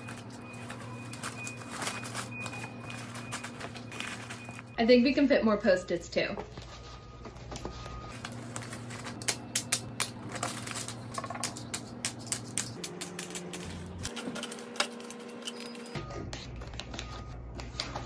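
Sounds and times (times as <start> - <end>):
pens clicking and clattering: 9.2 - 15.6.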